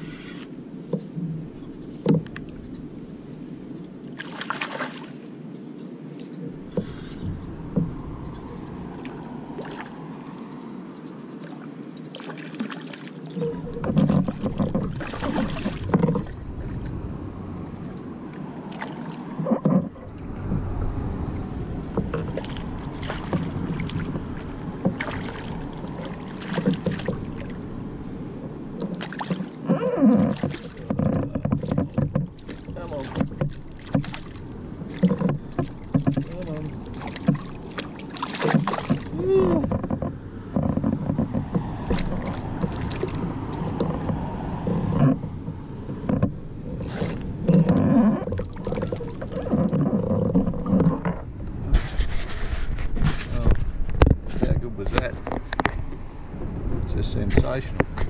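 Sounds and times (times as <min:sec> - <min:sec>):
knocks and rattles in a kayak: 0:00.8 - 0:03.0, 0:06.2 - 0:10.6, 0:12.0 - 0:58.0.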